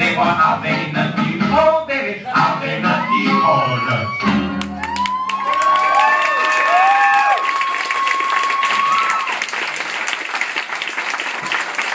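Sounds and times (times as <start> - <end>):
whistles and whoops: 3.0 - 9.4
audience clapping: 4.6 - 11.9.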